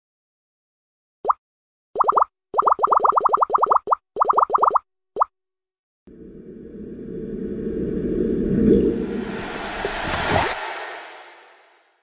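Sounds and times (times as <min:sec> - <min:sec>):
cartoon plops and blips: 0:02.0 - 0:05.3
whoosh of noise: 0:06.1 - 0:12.0.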